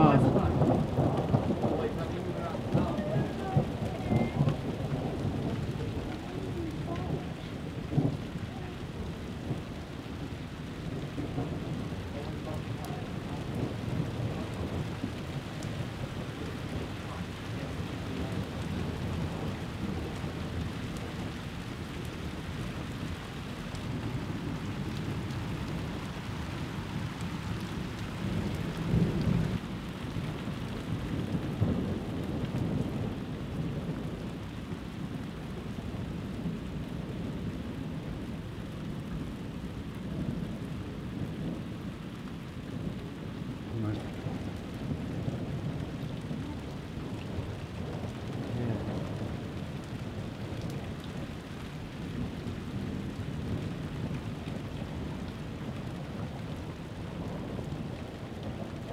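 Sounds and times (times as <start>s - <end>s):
steady rain: 0.0s - 58.9s
thunder rumbling: 0.0s - 58.9s.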